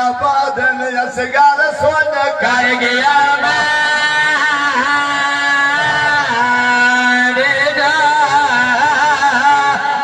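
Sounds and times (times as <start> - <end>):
men singing a lament: 1.2 - 10.0.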